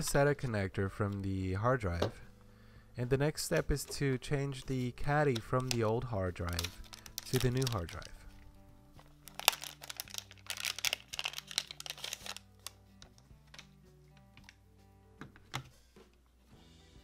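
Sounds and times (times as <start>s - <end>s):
soft background music: 0.0s - 17.0s
plastic bag crinkling: 5.2s - 13.7s.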